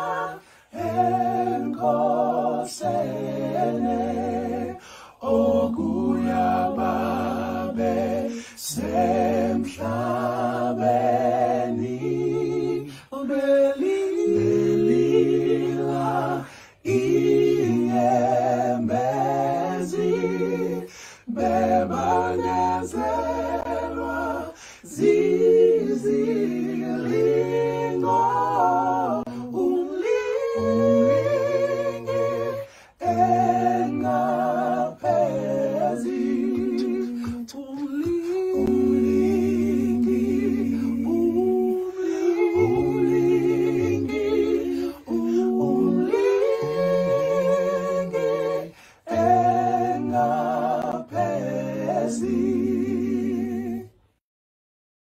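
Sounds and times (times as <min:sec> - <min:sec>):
group singing in harmony: 0:00.0 - 0:54.2
person humming a slow tune: 0:36.5 - 0:48.0.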